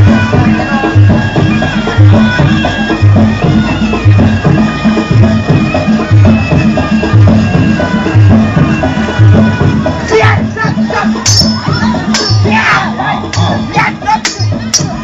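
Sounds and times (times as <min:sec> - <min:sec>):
hand drums beating: 0:00.0 - 0:15.0
nasal reed pipe melody: 0:00.0 - 0:15.0.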